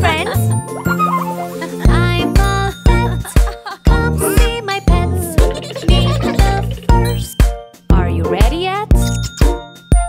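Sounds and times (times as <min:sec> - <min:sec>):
children's nursery music: 0:00.0 - 0:10.0.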